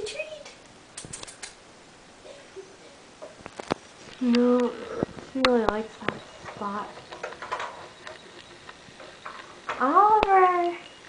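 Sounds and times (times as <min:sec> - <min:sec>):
sharp clicks: 0:00.4 - 0:01.6.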